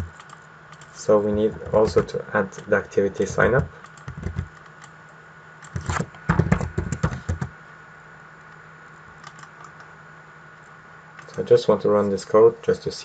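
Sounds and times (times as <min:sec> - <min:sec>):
computer keyboard typing: 0:00.0 - 0:02.1, 0:03.2 - 0:04.9, 0:05.6 - 0:07.5, 0:09.2 - 0:09.8.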